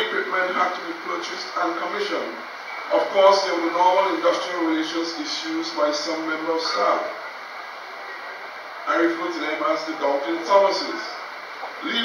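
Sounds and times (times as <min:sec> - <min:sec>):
man speaking: 0:00.0 - 0:07.2, 0:08.9 - 0:11.2, 0:11.8 - 0:12.0
steady background hiss: 0:00.0 - 0:12.0.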